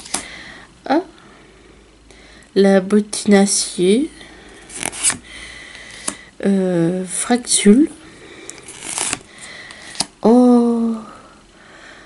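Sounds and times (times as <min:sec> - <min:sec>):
card sliding with papery rustle: 0:04.7 - 0:05.2, 0:08.6 - 0:10.1.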